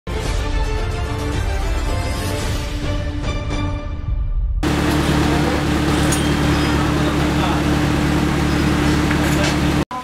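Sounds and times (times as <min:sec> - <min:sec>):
theme music: 0:00.1 - 0:06.3
car engine idling: 0:04.6 - 0:09.8.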